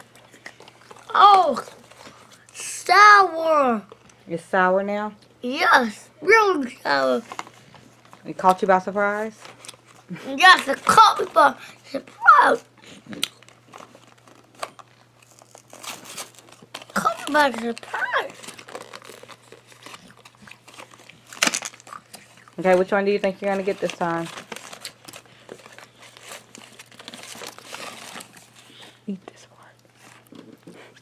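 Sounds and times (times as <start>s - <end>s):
foil wrapper crinkling: 13.1s - 29.0s.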